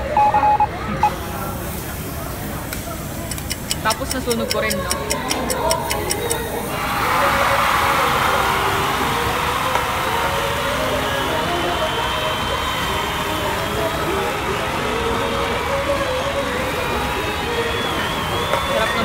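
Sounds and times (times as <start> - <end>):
background voices: 0.7 - 19.0
steady hiss: 1.1 - 19.0
background music: 3.8 - 19.0.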